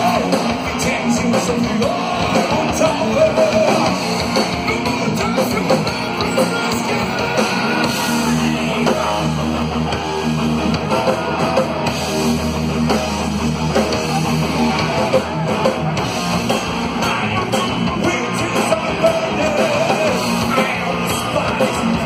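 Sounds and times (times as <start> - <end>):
heavy metal band playing: 0.0 - 22.0.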